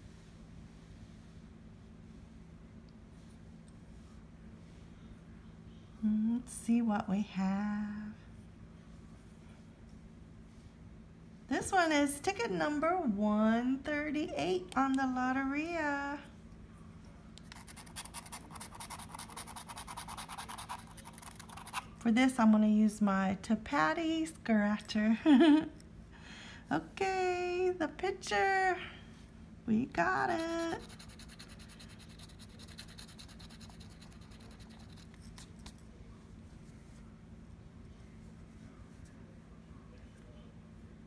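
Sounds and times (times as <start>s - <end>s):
scratching lottery ticket: 17.4s - 22.0s, 30.2s - 35.8s.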